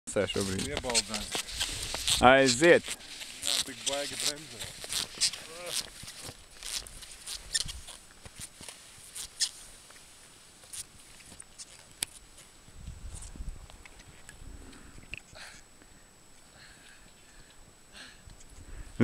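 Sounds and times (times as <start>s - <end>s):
skis scraping and crunching snow: 0.2s - 14.3s.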